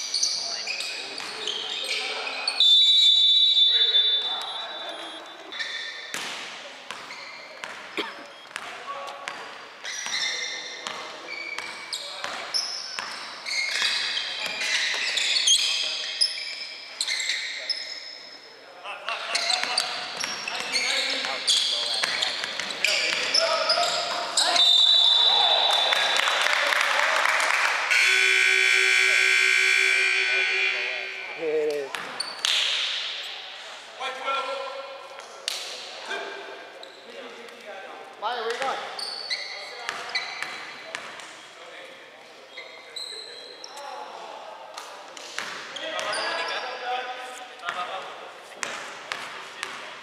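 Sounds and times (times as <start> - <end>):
players' voices: 17.0 - 50.0
high steady tone: 27.9 - 31.7
scoreboard buzzer: 27.9 - 31.7.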